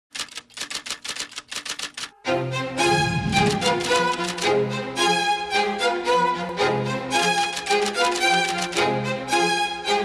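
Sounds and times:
rapid mechanical clicks: 0.1 - 2.1.

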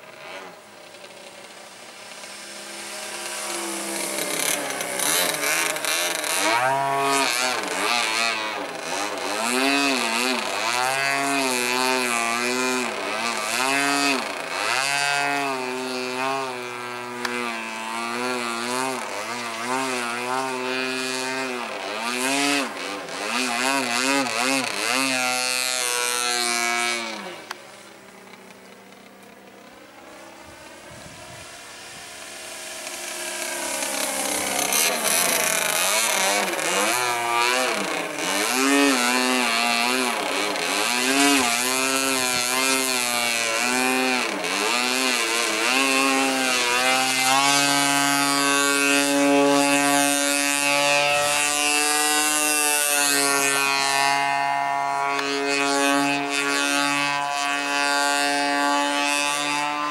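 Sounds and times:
model plane engine and propeller: 0.0 - 59.9.

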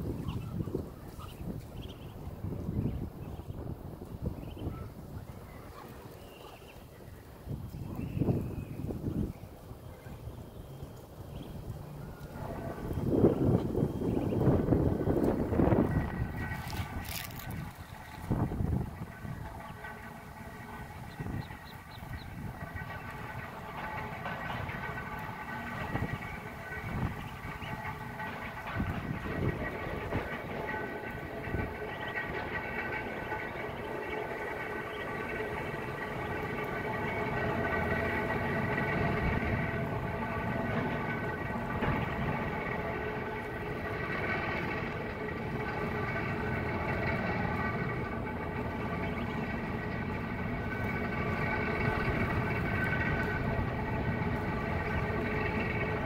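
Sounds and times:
low rumble: 0.0 - 56.0
mechanical drone: 0.0 - 56.0.

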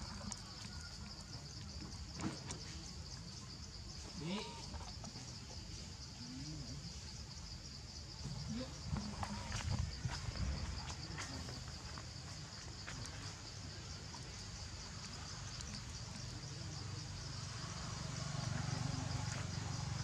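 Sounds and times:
insects droning: 0.0 - 20.0.

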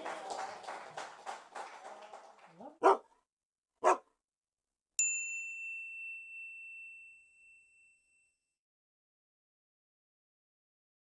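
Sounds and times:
dog barking: 2.6 - 3.2, 3.8 - 4.1
bright bell-like ding: 5.0 - 8.4.

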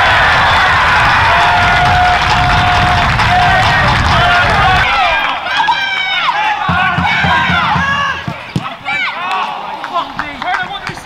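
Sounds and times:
crowd noise: 0.0 - 11.0
players shouting: 0.0 - 11.0
low thuds: 6.7 - 8.9.

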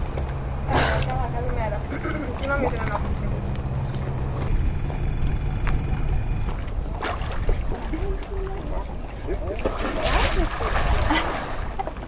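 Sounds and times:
boat engine rumble: 0.0 - 12.0
faint voices: 5.2 - 10.6
water splash: 6.8 - 8.7, 9.5 - 12.0.

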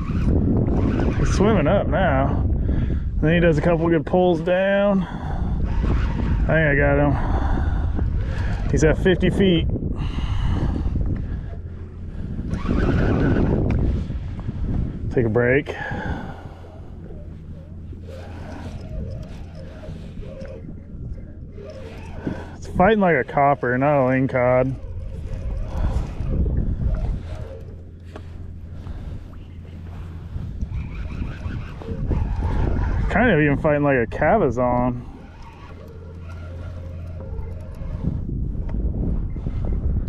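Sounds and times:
low rumble: 0.0 - 40.0
wind buffeting microphone: 0.0 - 40.0
fishing reel clicking: 17.0 - 32.8, 35.0 - 38.1.

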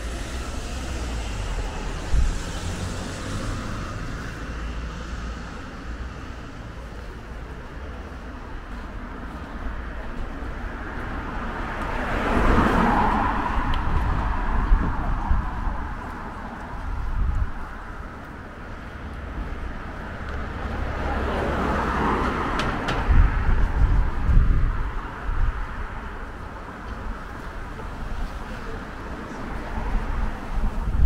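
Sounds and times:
cars passing: 0.0 - 31.0.

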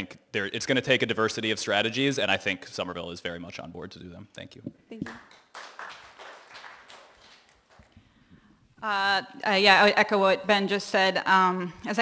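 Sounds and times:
audience applause: 5.1 - 8.0.

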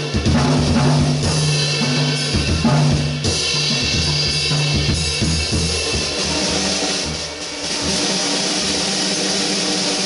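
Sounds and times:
cymbals: 0.0 - 10.0.

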